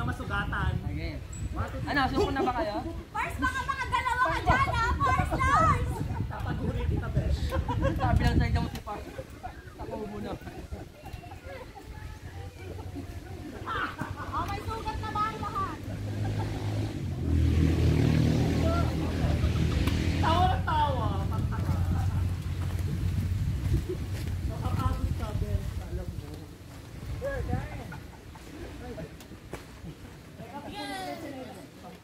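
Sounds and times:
laughter: 0:01.9 - 0:03.0, 0:04.2 - 0:08.4, 0:09.0 - 0:14.5, 0:15.8 - 0:16.9, 0:19.0 - 0:19.9, 0:21.0 - 0:22.5, 0:27.7 - 0:29.2
children shouting and squealing: 0:03.3 - 0:06.1, 0:10.6 - 0:14.1, 0:18.4 - 0:19.4, 0:30.6 - 0:31.7
faint voices: 0:08.1 - 0:17.2
engine humming: 0:12.3 - 0:25.2.

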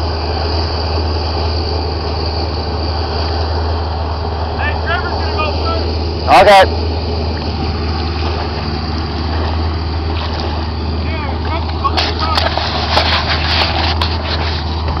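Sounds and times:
engine rumble: 0:00.0 - 0:15.0.

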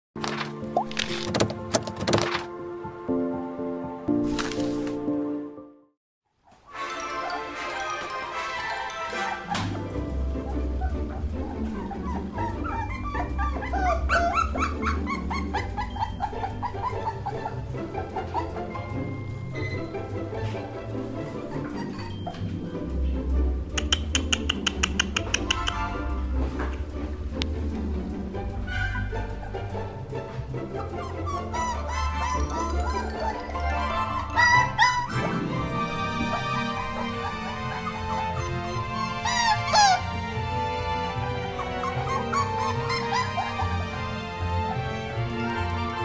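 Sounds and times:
light background music: 0:00.2 - 0:05.9, 0:06.6 - 0:46.0
puppies whining and yipping: 0:06.5 - 0:22.6, 0:28.7 - 0:29.8, 0:30.6 - 0:46.0.

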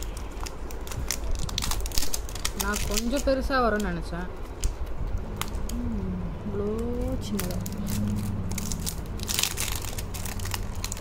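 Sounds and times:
plastic wrapper crinkling: 0:00.0 - 0:05.8, 0:06.7 - 0:11.0.

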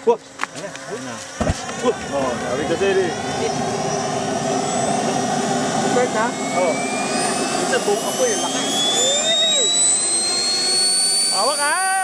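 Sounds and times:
model jet turbine whine: 0:00.0 - 0:12.0.

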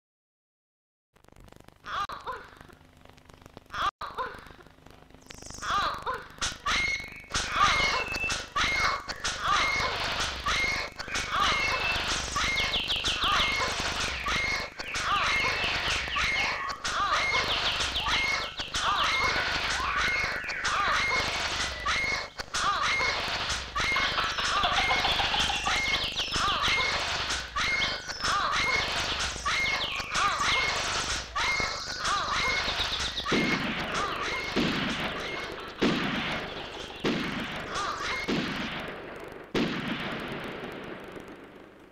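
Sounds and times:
chirping and squealing sounds: 0:03.6 - 0:38.4.

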